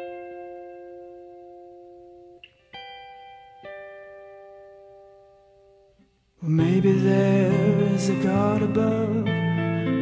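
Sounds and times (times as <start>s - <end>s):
plucked guitar notes: 0.0s - 10.0s.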